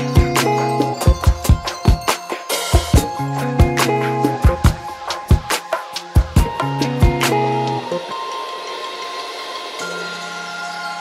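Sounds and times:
chillout music with held notes: 0:00.0 - 0:11.0.

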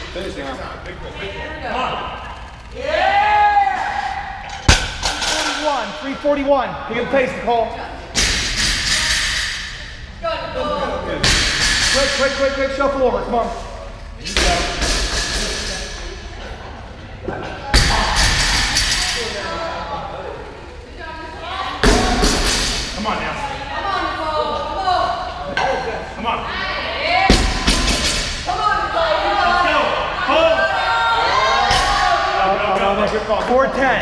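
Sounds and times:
barbells thudding on rubber floor: 0:04.6 - 0:05.7.

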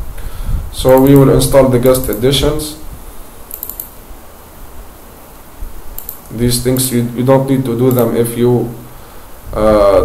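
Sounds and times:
low background hum: 0:00.0 - 0:10.0
faint computer mouse clicks: 0:03.5 - 0:03.9, 0:06.0 - 0:06.9.

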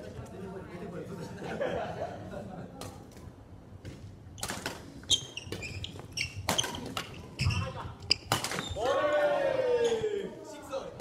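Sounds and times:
shoes squeaking on floor: 0:04.4 - 0:08.8
racket hitting shuttlecock: 0:08.2 - 0:08.8
long falling shout: 0:08.8 - 0:10.3.

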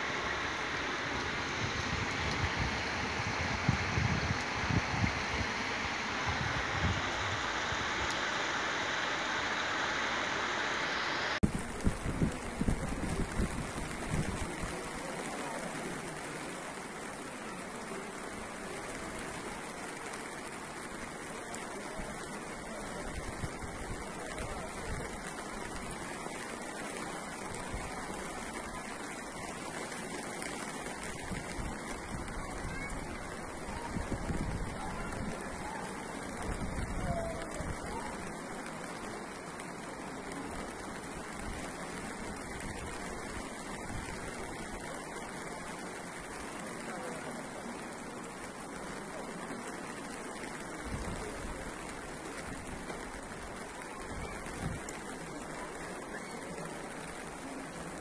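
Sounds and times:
floodwater rushing: 0:00.0 - 0:58.0.

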